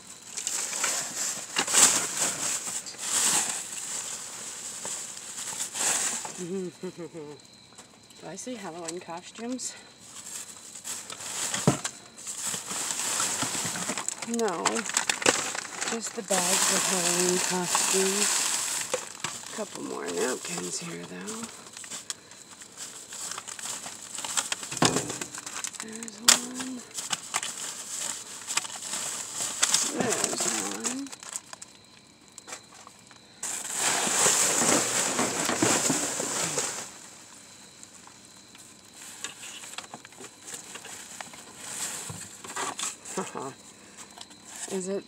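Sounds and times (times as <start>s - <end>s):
plastic bags crinkling: 0.0s - 6.6s, 10.0s - 44.9s.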